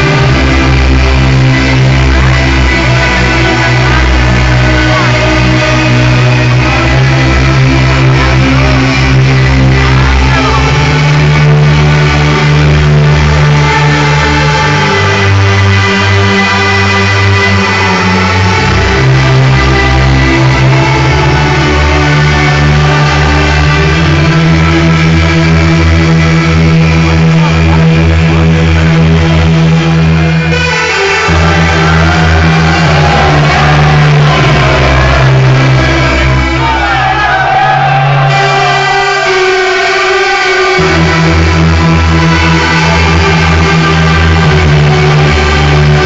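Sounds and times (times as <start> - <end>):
synth chords: 0.0 - 46.0
held bass note: 29.2 - 37.0.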